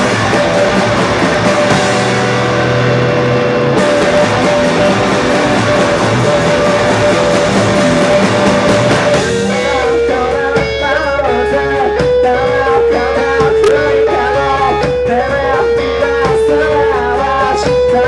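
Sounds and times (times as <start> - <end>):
picked electric guitar: 0.0 - 18.0
rock band playing: 0.0 - 18.0
drum hits: 3.8 - 9.6, 13.4 - 14.4.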